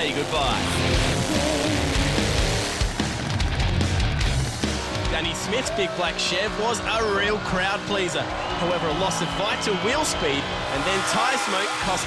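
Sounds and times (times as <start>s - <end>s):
loud backing music: 0.0s - 12.0s.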